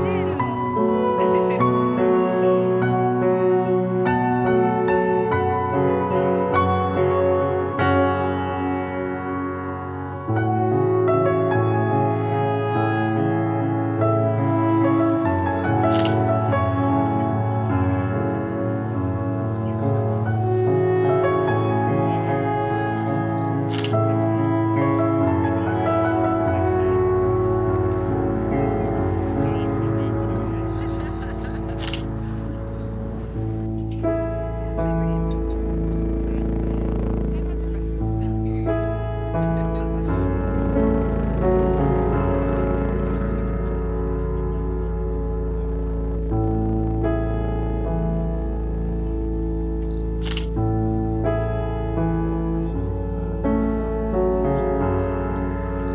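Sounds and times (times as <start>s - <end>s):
music with sustained notes: 0.0s - 55.9s
camera shutter click: 31.4s - 32.1s, 50.2s - 50.6s.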